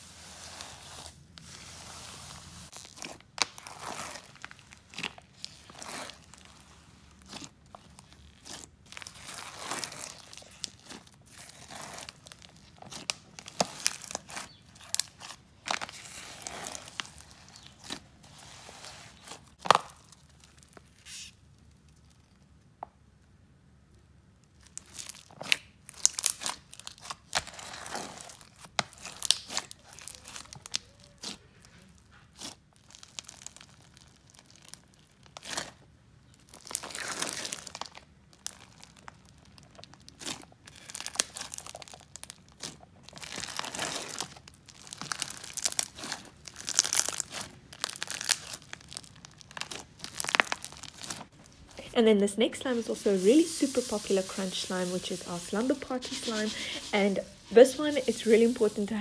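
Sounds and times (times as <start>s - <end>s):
crunchy slime crackling and popping: 2.6s - 51.8s.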